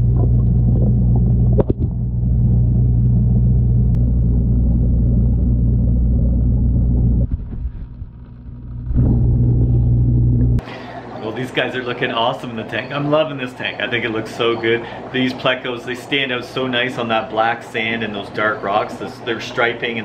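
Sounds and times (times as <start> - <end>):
aquarium filter pump hum underwater: 0.0 - 20.0.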